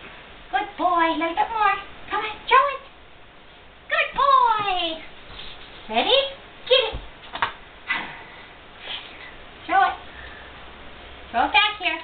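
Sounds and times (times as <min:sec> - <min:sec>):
rustling: 0:04.6 - 0:06.1.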